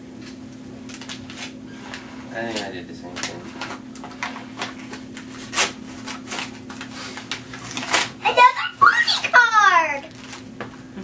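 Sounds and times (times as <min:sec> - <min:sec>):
wrapping paper tearing and crumpling: 0:00.9 - 0:02.0, 0:03.2 - 0:10.5.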